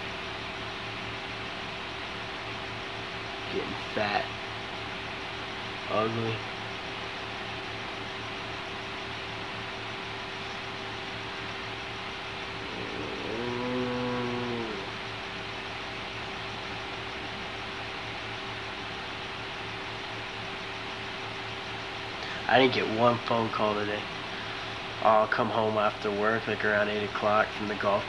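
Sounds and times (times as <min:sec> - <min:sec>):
faint hum: 0:00.0 - 0:28.0
low drawn-out male groan: 0:12.5 - 0:15.0.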